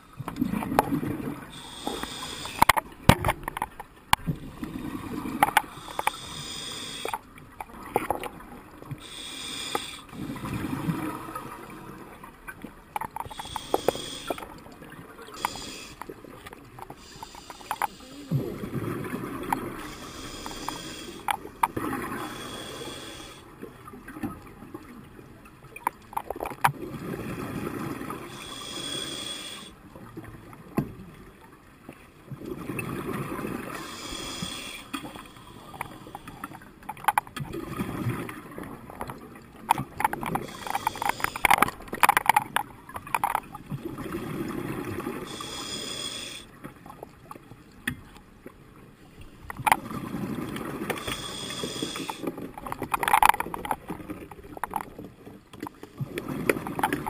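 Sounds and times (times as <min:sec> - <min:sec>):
regulator hissing inhalations: 0:01.5 - 0:02.7, 0:05.7 - 0:07.2, 0:09.0 - 0:10.1, 0:13.2 - 0:14.4, 0:15.3 - 0:16.1, 0:16.9 - 0:18.3, 0:19.8 - 0:21.4, 0:22.2 - 0:23.5, 0:28.3 - 0:29.8, 0:33.8 - 0:36.6, 0:40.4 - 0:41.8, 0:45.2 - 0:46.5, 0:51.0 - 0:52.3
diving gear clicks and knocks: 0:01.9 - 0:04.4, 0:05.3 - 0:06.2, 0:07.0 - 0:08.4, 0:12.5 - 0:14.7, 0:15.3 - 0:18.0, 0:19.4 - 0:22.0, 0:25.7 - 0:26.8, 0:35.0 - 0:37.6, 0:38.6 - 0:44.0, 0:49.4 - 0:51.2, 0:51.8 - 0:57.0.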